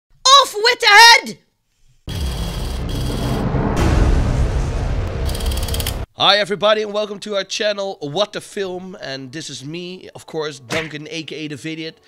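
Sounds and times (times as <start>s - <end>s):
low rumble: 2.1s - 6.1s.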